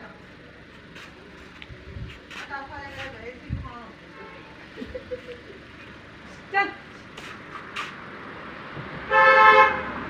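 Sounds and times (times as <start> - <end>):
car horn honk: 4.1 - 4.6, 9.1 - 10.0.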